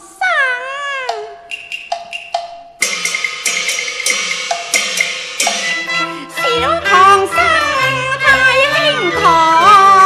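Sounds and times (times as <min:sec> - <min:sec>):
accompanying instrumental notes: 0:01.5 - 0:10.0.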